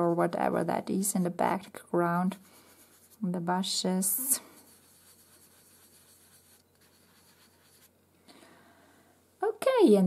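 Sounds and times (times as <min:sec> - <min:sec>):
fingertip rubbing pastel on paper: 0:02.3 - 0:03.2, 0:04.4 - 0:07.9.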